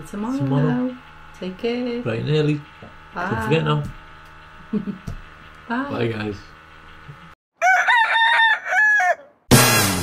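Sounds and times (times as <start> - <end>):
rooster crowing: 7.6 - 9.5
loud sudden hit: 9.5 - 10.0.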